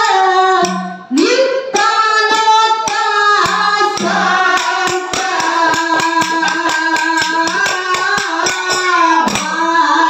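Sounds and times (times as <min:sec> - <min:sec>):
drum beating fast: 0:01.8 - 0:09.7
small hand cymbals: 0:02.3 - 0:09.6.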